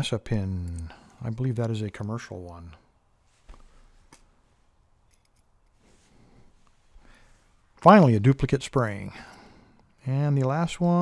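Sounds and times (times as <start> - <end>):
tweezers and lock pin clicking: 5.0 - 5.8.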